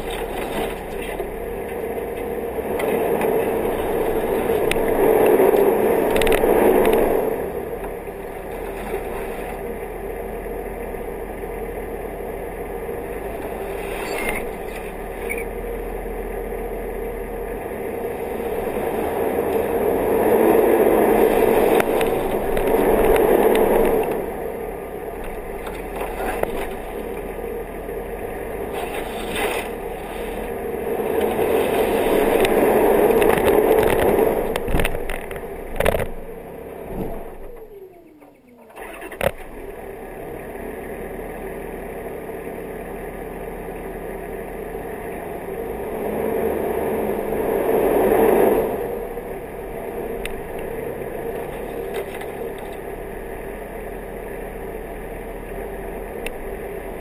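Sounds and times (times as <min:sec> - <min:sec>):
off-road vehicle engine: 0:00.0 - 0:57.0.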